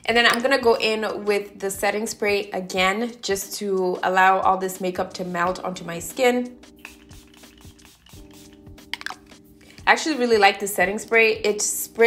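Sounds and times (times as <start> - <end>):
soft background music: 0.0 - 12.0
spray mister hissing: 6.8 - 8.6.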